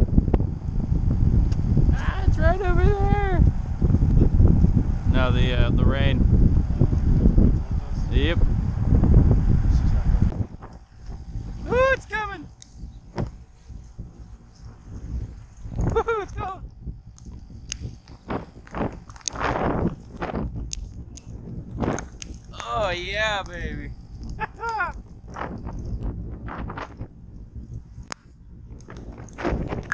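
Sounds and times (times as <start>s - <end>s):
wind rumbling on microphone: 0.0s - 29.9s.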